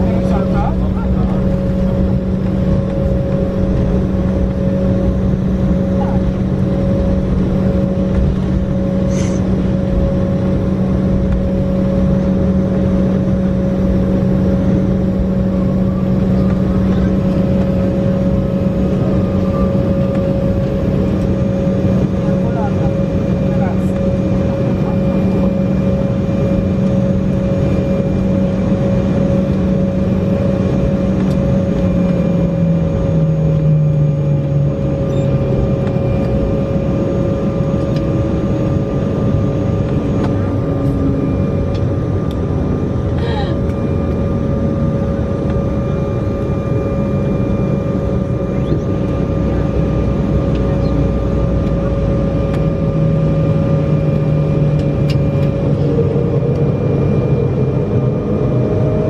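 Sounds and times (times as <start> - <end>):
jet engines idling in cabin: 0.0 - 59.0.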